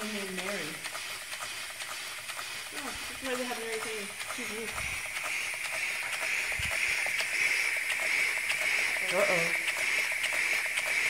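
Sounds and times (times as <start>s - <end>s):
mechanism ticking: 0.0s - 11.0s
steady air hiss: 0.0s - 11.0s.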